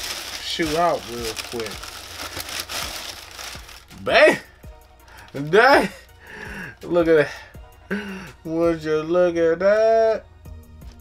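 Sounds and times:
tissue paper crinkling: 0.0s - 4.4s.

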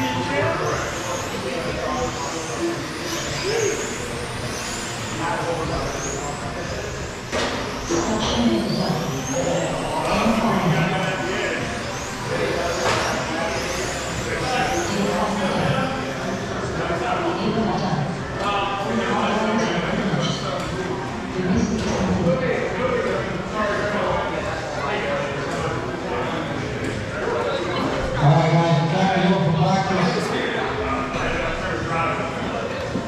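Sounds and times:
high electric motor whines: 0.0s - 24.9s
people talking: 0.0s - 33.0s.

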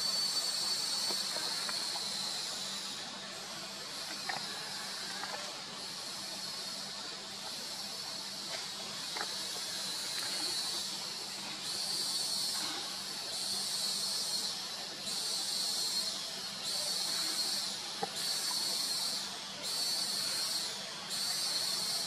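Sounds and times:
cicadas buzzing: 0.0s - 22.0s.

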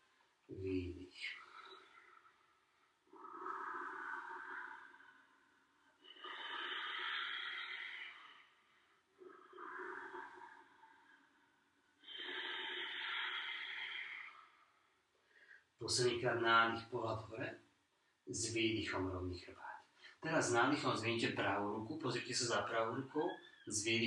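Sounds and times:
man breathing deeply: 1.3s - 15.7s.

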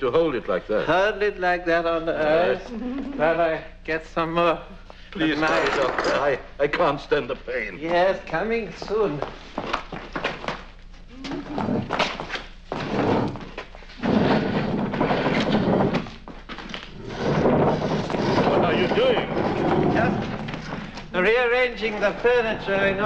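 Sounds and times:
furniture scraping on floor: 5.4s - 6.4s, 11.4s - 21.2s.

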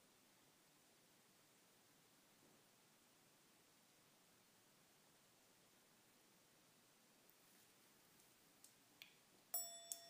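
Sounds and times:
meditation bell ringing: 9.5s - 10.0s.

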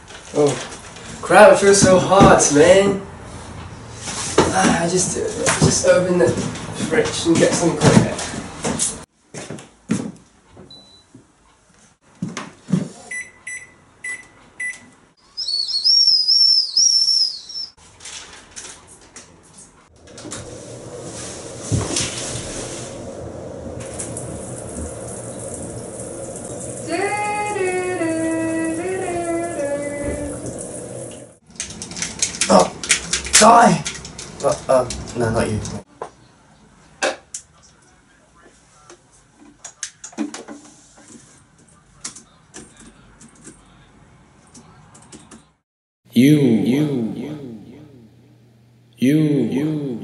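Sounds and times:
high warbling whistle: 15.4s - 17.8s
shower running: 20.0s - 31.4s.

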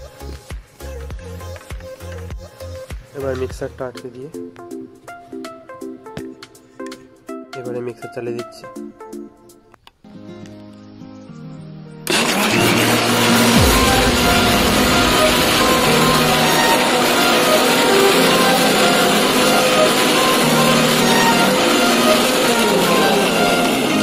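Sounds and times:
background music: 0.0s - 24.0s
mixer grinder blending ice: 12.1s - 24.0s.

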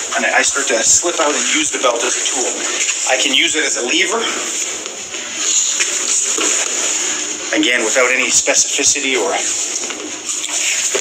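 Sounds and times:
steady hiss: 0.0s - 11.0s
clothing rustling: 4.0s - 8.2s.

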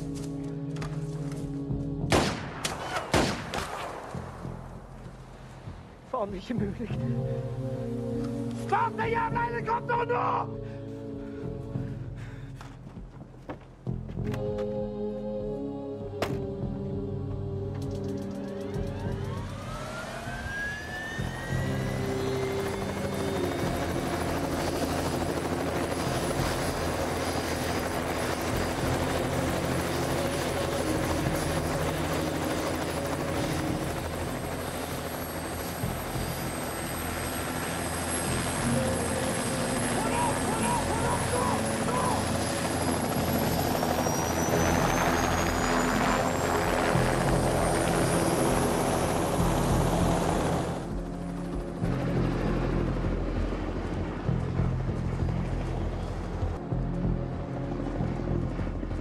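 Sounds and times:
helicopter turbine engine: 14.8s - 59.0s
high whine rising in pitch: 19.2s - 23.6s.

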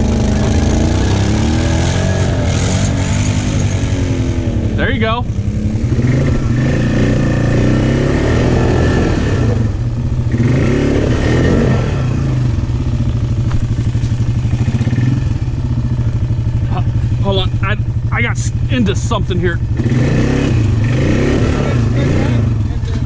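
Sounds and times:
atv engine revving: 0.0s - 23.0s.

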